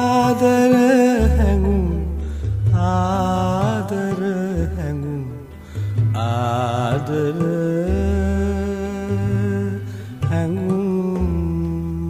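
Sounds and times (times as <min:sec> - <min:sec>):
low instrumental accompaniment: 0:00.0 - 0:12.0.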